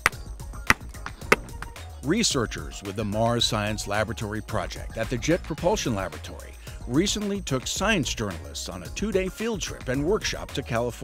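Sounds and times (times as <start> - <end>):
hammer tapping on rock: 0.0 - 1.8.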